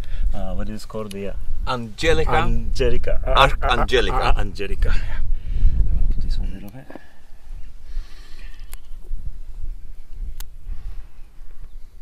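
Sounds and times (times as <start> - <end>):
low wind rumble on microphone: 0.0 - 12.0.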